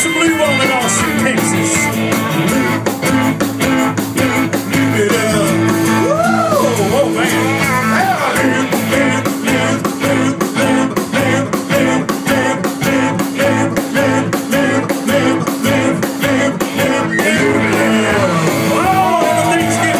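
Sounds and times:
country-rock band playing: 0.0s - 19.9s.

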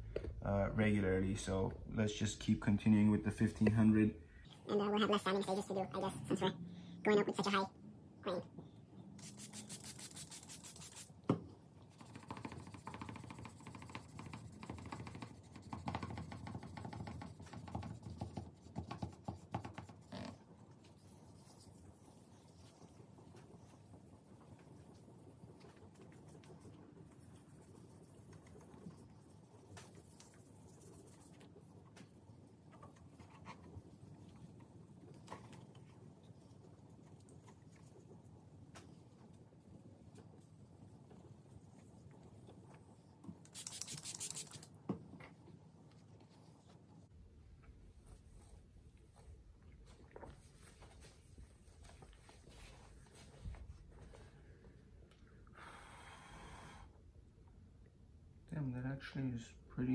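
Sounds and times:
hand wet-sanding rubbing strokes: 9.2s - 11.2s, 11.9s - 20.3s, 43.5s - 44.6s
spray bottle spritzes: 9.2s - 11.2s, 43.4s - 44.7s.

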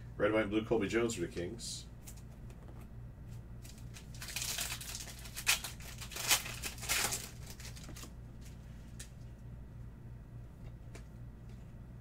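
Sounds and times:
foil wrapper ripping: 3.6s - 8.6s
foil wrapper rustling: 3.6s - 9.1s.

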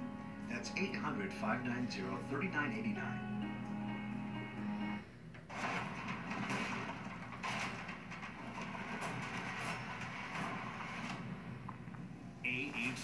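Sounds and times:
sustained music chord: 0.0s - 5.0s
rough noisy soundtrack with sharp hits: 5.5s - 13.0s.

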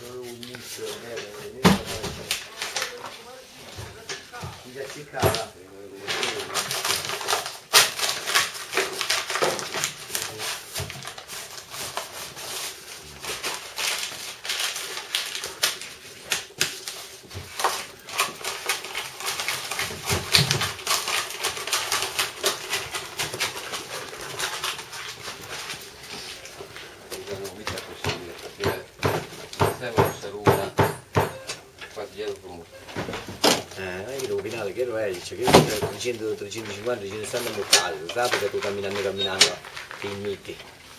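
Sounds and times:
paper rustling and crackling: 0.0s - 28.6s, 31.7s - 40.9s.

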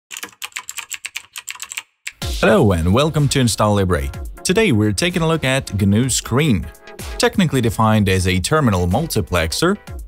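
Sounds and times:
computer keyboard typing: 0.1s - 2.2s.

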